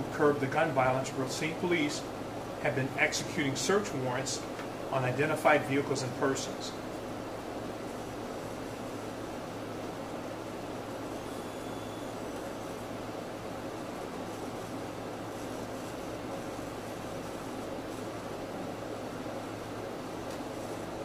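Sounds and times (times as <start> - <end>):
steady noise with low hum: 0.0 - 21.0.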